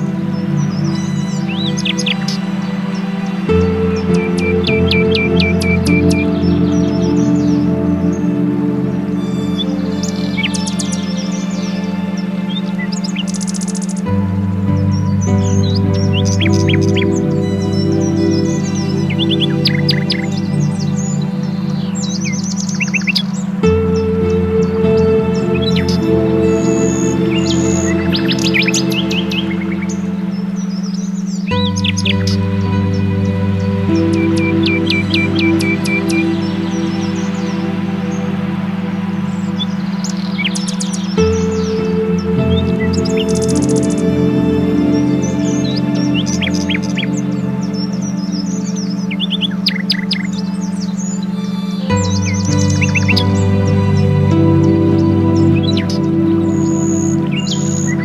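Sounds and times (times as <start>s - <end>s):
ambient synthesizer chords: 0.0s - 58.0s
birdsong chirps: 0.0s - 58.0s
low drone: 0.0s - 58.0s.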